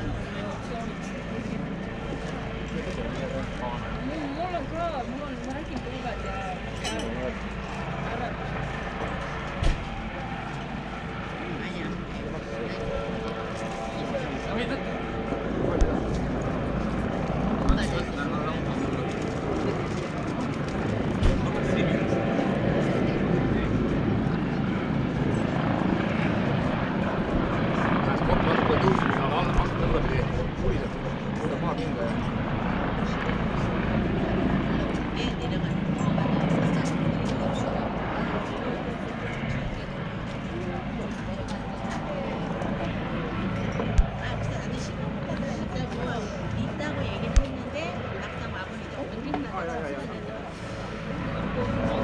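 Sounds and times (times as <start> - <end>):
helicopter engine and rotor drone: 0.0 - 52.0
people talking indistinctly: 0.0 - 52.0.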